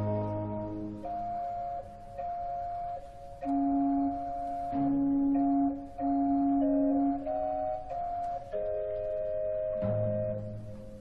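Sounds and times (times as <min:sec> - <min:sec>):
organ playing held chords: 0:00.0 - 0:11.0.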